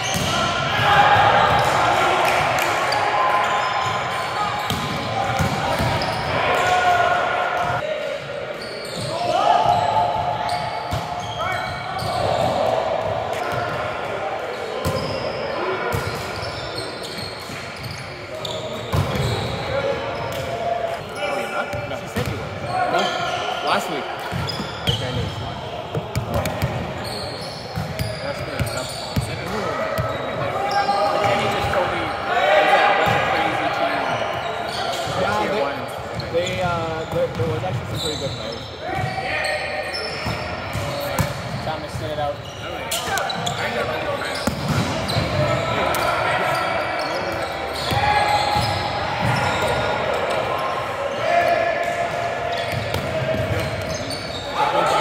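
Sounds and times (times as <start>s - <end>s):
players shouting: 0.0s - 14.3s, 42.4s - 55.0s
volleyball slaps: 44.4s - 45.3s.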